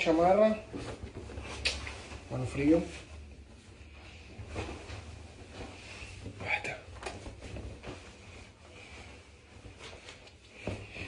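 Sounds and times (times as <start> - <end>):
denim jacket rustling: 0.0 - 11.0.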